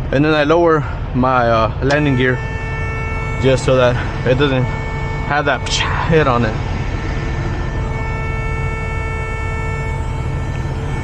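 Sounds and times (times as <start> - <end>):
truck diesel engine rumbling: 0.0 - 11.0.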